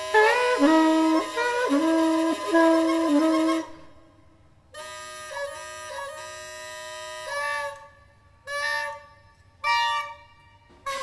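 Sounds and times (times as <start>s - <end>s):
soprano saxophone improvising: 0.0s - 3.8s, 4.8s - 9.0s.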